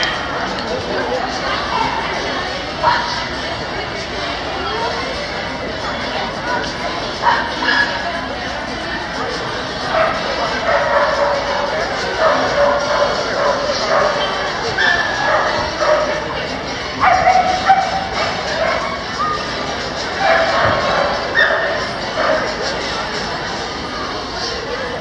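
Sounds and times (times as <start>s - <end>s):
dogs barking: 0.0s - 3.4s, 6.5s - 25.0s
people chatting: 0.0s - 25.0s.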